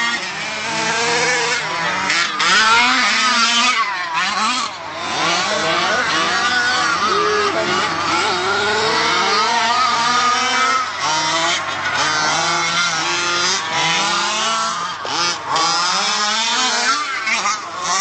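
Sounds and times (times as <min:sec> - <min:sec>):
two-stroke engine revving: 0:00.0 - 0:18.0.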